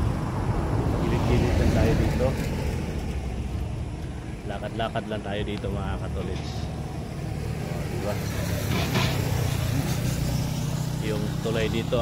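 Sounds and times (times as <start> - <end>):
vehicle passing: 0.0 - 12.0.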